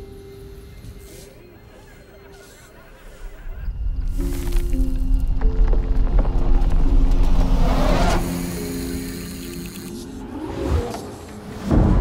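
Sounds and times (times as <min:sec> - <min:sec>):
cinematic trailer music: 0:03.6 - 0:12.0.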